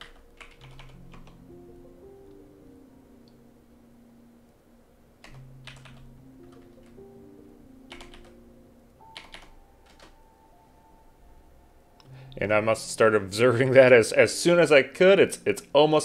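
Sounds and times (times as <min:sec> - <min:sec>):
computer keystrokes: 0:00.0 - 0:01.4, 0:05.2 - 0:07.0, 0:07.9 - 0:08.4, 0:09.1 - 0:10.2
faint background music: 0:00.0 - 0:16.0.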